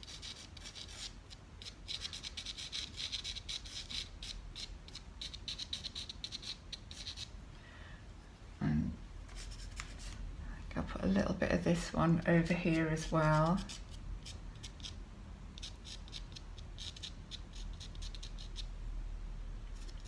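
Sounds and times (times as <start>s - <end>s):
pastel pencil scratching paper: 0.0s - 7.3s, 12.4s - 15.0s, 15.6s - 18.7s.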